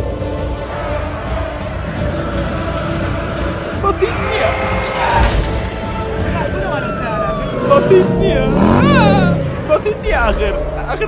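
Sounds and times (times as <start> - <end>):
voices calling out: 3.8 - 11.0.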